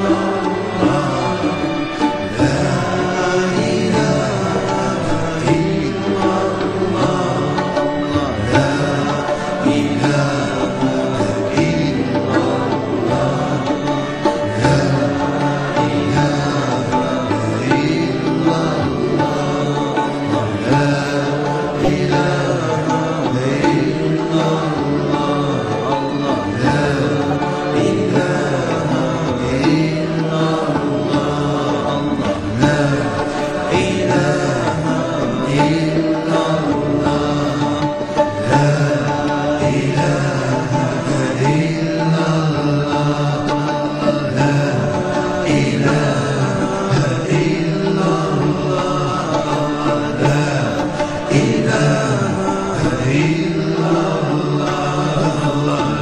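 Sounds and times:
music with chanted singing: 0.0s - 56.0s.

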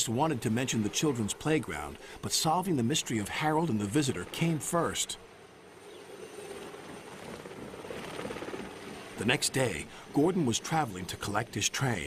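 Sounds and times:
helicopter rotor chopping: 5.8s - 12.0s.

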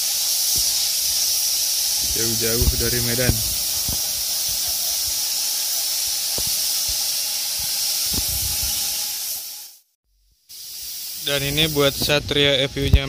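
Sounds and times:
paint spray gun hissing: 0.0s - 13.0s.

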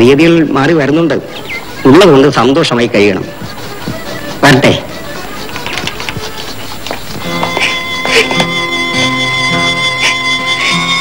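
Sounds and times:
sustained instrumental notes: 1.2s - 11.0s.

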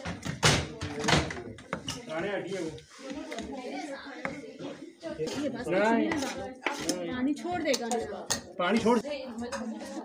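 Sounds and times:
cutlery clinking on steel bowl: 6.1s - 7.0s, 7.7s - 10.0s.

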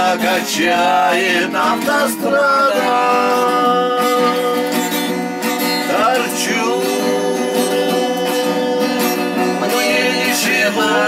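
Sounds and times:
acoustic guitar: 0.0s - 11.0s
person singing long notes: 0.0s - 11.0s.

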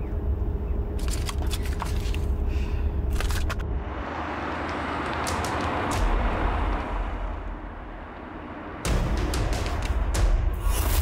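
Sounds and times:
car driving past: 3.7s - 9.4s.

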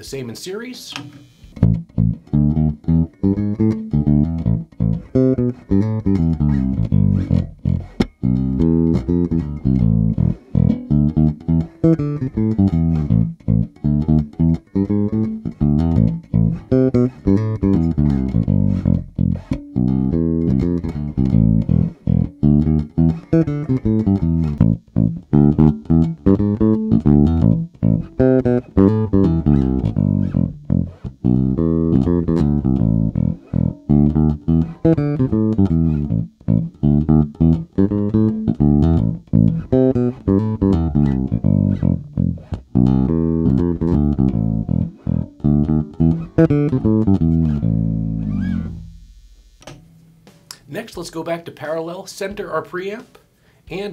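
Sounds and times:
electric bass plucked notes: 1.0s - 51.2s.

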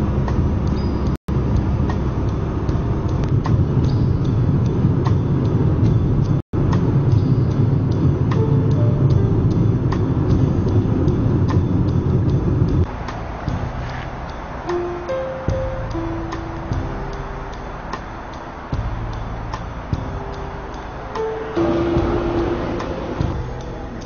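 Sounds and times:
low road rumble: 0.0s - 24.0s
music playing: 0.0s - 24.0s.

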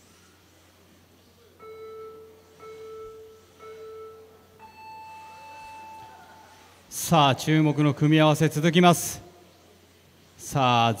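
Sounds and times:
long high beep: 1.6s - 6.8s
short countdown beeps: 1.6s - 6.8s.

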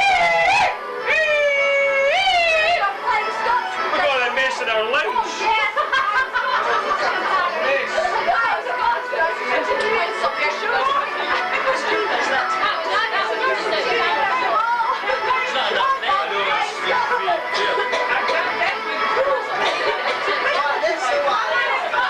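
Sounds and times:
overlapping party chatter: 0.0s - 22.0s.

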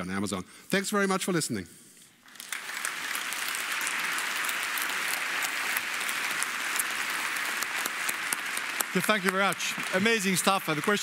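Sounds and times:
audience applauding: 2.3s - 11.0s.

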